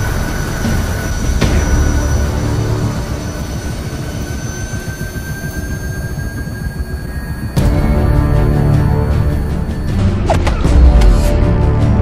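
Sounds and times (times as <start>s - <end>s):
high metallic squeal: 0.0s - 10.2s
low rumbling drone: 0.0s - 12.0s.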